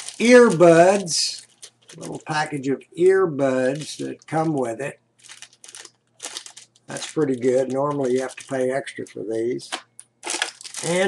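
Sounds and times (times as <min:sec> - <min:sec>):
plastic packet crinkling: 0:00.0 - 0:02.7, 0:03.6 - 0:11.0.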